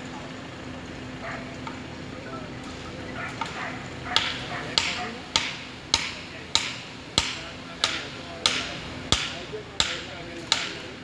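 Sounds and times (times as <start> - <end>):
axe striking tree trunk: 4.2 - 10.8.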